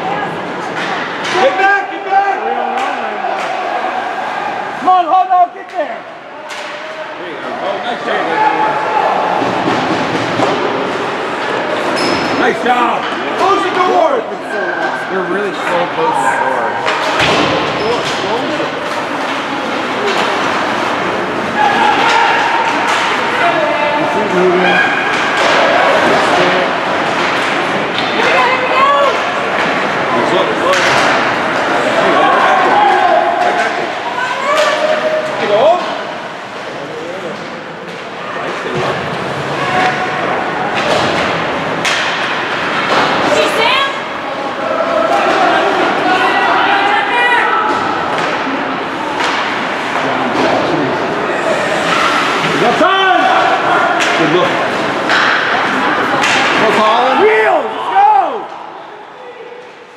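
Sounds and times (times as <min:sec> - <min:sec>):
crowd voices calling out: 0:00.0 - 0:59.9
puck and players hitting boards: 0:00.6 - 0:01.6, 0:02.7 - 0:04.4, 0:09.1 - 0:14.0, 0:16.8 - 0:23.6, 0:24.7 - 0:46.3, 0:47.6 - 0:51.1, 0:53.4 - 0:57.3.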